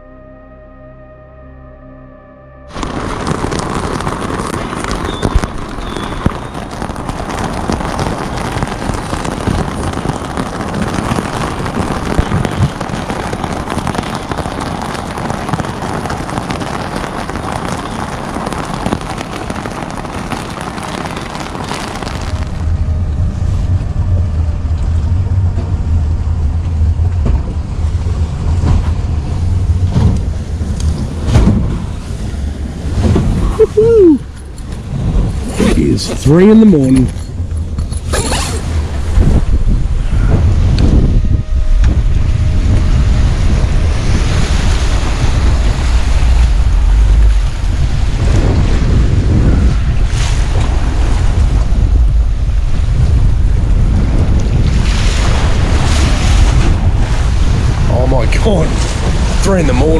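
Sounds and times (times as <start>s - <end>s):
deep steady rumble: 0.0s - 59.9s
rain hissing on fabric canopy: 2.7s - 59.9s
strong wind: 2.7s - 59.9s.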